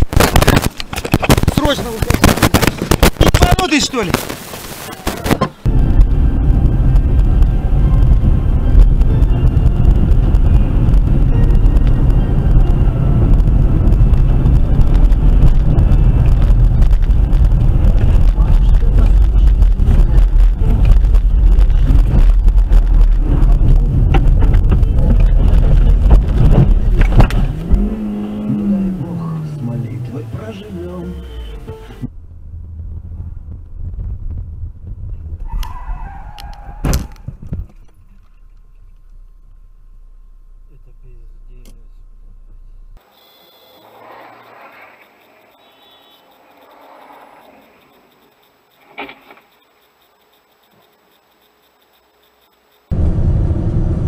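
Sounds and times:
engine slowing tone: 0:05.6 - 0:35.8, 0:37.8 - 0:54.0.

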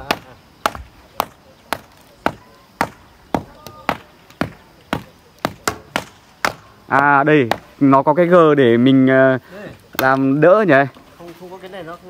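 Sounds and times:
rammers thudding on earth: 0:00.0 - 0:07.8.

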